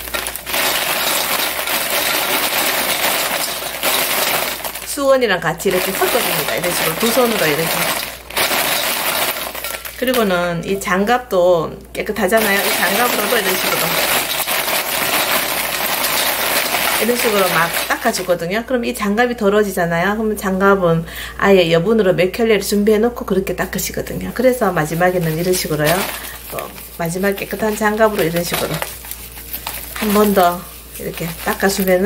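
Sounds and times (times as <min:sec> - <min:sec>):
dried peppers rustling in bowl: 0:00.0 - 0:11.0, 0:12.1 - 0:18.5, 0:23.6 - 0:32.0.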